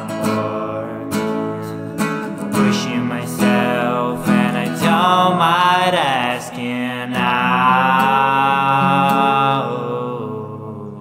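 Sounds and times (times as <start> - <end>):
man singing a long note: 0.0 - 1.9, 2.5 - 11.0
strummed acoustic guitar: 0.0 - 11.0.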